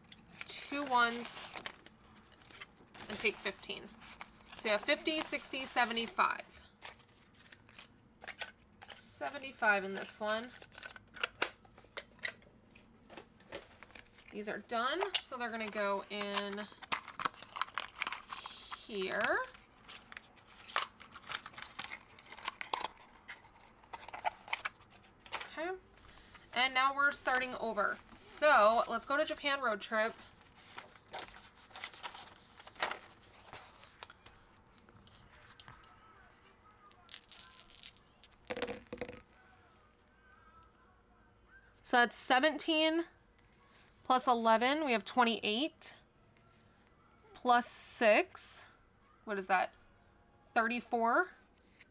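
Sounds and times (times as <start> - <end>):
cards clicking and tapping: 36.8 - 39.4
metal dice rattling and clattering: 37.1 - 39.2.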